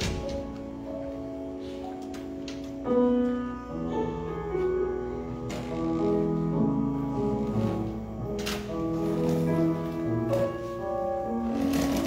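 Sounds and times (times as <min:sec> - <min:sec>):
slow piano music: 0:00.0 - 0:12.0.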